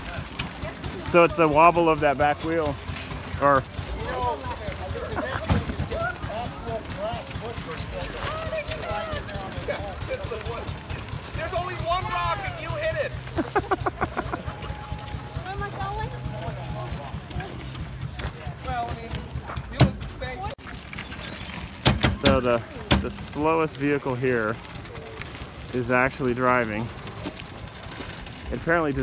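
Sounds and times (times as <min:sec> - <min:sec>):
people talking: 0:00.0 - 0:20.6, 0:22.2 - 0:24.6, 0:25.7 - 0:26.9.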